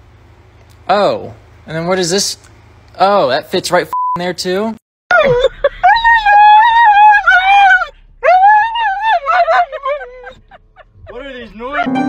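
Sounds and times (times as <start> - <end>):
dog howling and yowling: 5.2 - 10.6.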